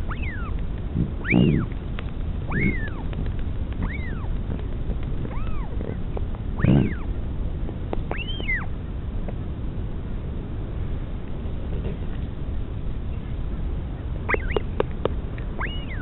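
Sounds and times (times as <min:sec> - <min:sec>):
albatross chick whistled calls: 0:00.0 - 0:00.6, 0:01.2 - 0:01.7, 0:02.5 - 0:03.1, 0:03.8 - 0:04.3, 0:05.3 - 0:05.7, 0:06.6 - 0:07.1, 0:08.1 - 0:08.7, 0:14.3 - 0:14.7, 0:15.6 - 0:16.0
steady low rumble: 0:00.0 - 0:16.0.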